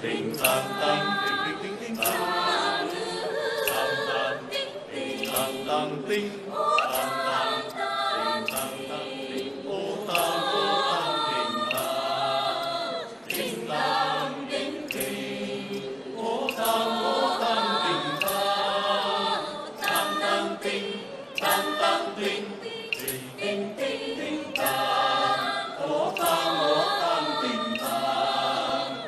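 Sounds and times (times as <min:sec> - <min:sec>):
choir singing a folk song: 0:00.0 - 0:29.0.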